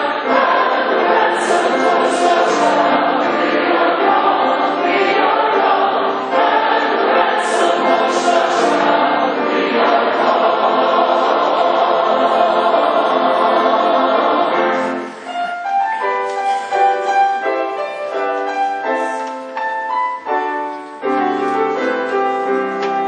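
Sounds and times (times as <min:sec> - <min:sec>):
choir singing a hymn: 0:00.0 - 0:15.2
piano accompaniment: 0:00.0 - 0:23.0.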